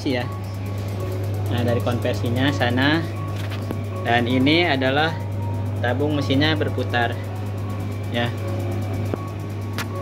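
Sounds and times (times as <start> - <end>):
clothes dryer humming: 0.0 - 10.0.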